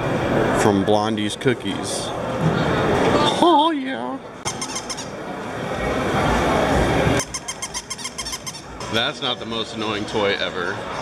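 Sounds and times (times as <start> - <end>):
mall background noise: 0.0 - 11.0.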